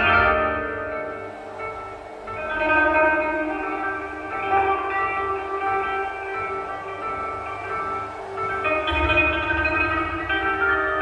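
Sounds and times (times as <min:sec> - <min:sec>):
plucked zither notes: 0:00.0 - 0:11.0.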